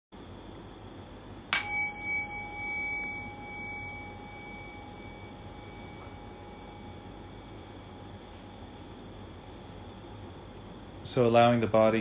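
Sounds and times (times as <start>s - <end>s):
faint steady hiss: 0.2s - 12.0s
meditation bell ringing: 1.5s - 10.0s.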